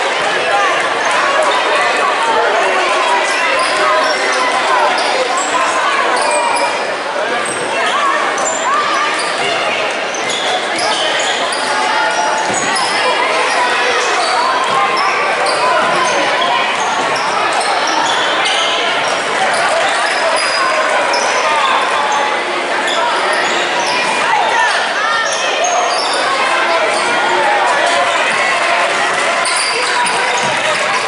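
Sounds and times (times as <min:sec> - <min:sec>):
indistinct voices: 0:00.0 - 0:31.0
sneakers squeaking: 0:02.6 - 0:28.6, 0:29.3 - 0:31.0.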